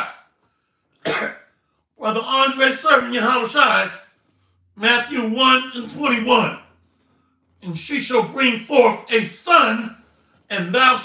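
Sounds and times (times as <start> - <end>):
man clearing throat: 1.0 - 1.5.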